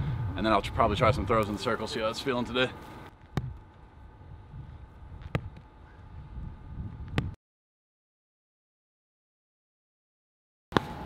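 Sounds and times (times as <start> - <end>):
distant traffic rumble: 0.0 - 6.7.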